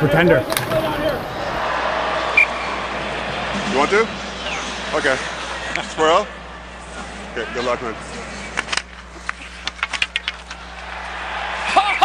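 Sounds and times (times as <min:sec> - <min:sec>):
hockey equipment clattering on ice: 0:08.5 - 0:10.9.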